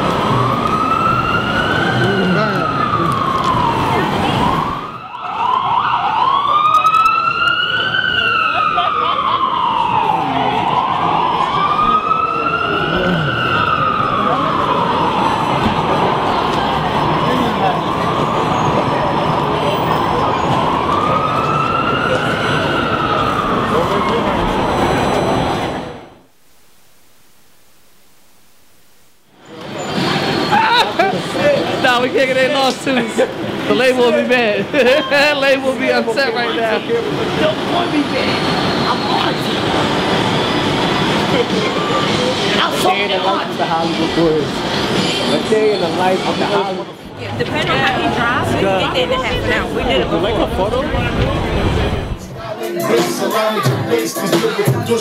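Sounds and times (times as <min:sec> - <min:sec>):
emergency siren wailing: 0:00.0 - 0:26.3, 0:35.0 - 0:52.3
city street noise: 0:00.0 - 0:55.0.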